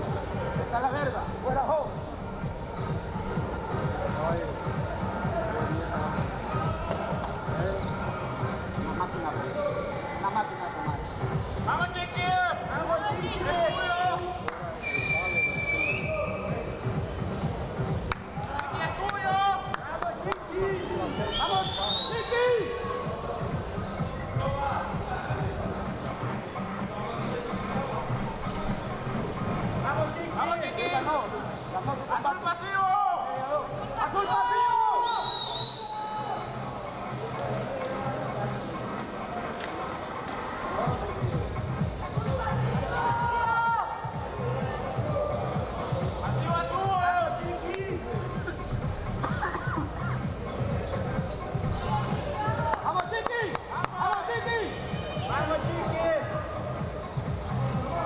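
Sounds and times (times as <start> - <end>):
high whistle-like tones: 14.8 - 16.6, 21.0 - 22.6, 34.9 - 36.8
people shouting: 32.6 - 36.4, 42.4 - 45.8.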